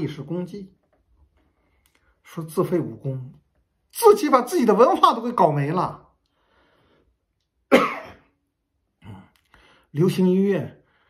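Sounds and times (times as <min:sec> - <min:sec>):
man coughing: 0:07.7 - 0:08.4.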